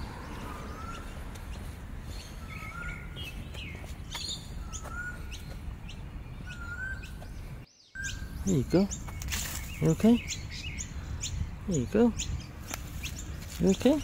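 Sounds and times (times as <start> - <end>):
birds chirping: 0.0 - 14.0.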